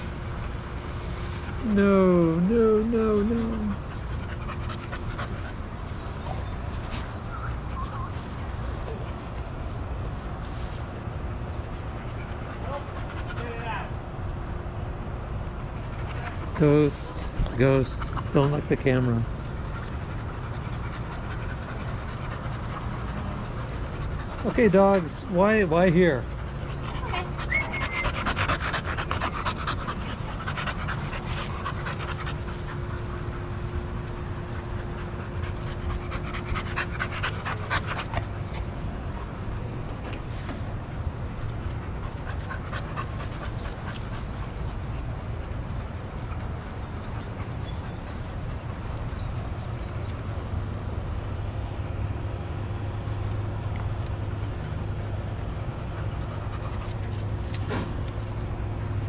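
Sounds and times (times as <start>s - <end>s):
dogs panting: 0.0s - 14.0s, 15.3s - 50.7s, 52.8s - 59.0s.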